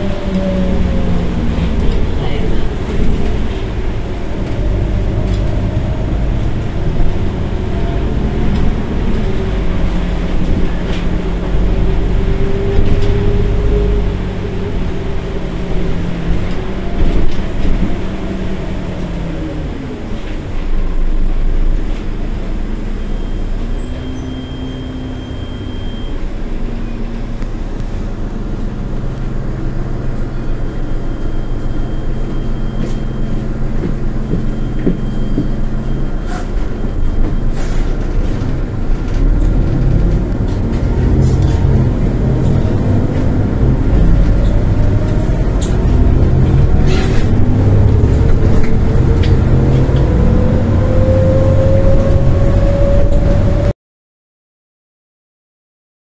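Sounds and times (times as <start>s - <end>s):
bus engine running: 0.0s - 53.7s
bus accelerating with rising whine: 0.0s - 53.8s.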